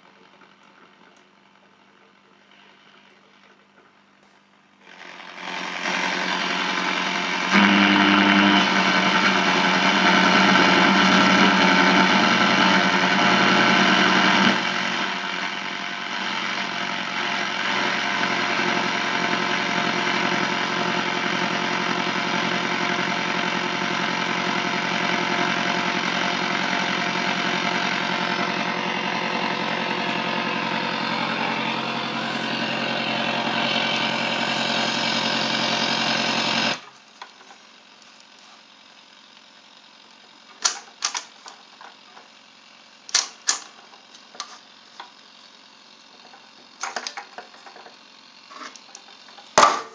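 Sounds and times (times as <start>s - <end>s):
radio static hiss: 0.0s - 4.4s, 16.1s - 38.7s
radio tones: 25.2s - 35.8s.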